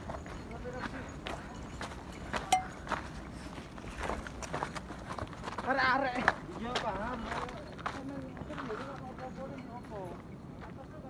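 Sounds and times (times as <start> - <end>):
footsteps crunching on gravel: 0.1 - 9.3.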